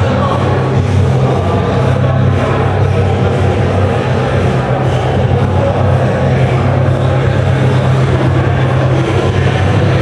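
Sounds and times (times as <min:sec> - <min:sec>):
loud music over pa system: 0:00.0 - 0:10.0
steady low drone: 0:00.0 - 0:10.0.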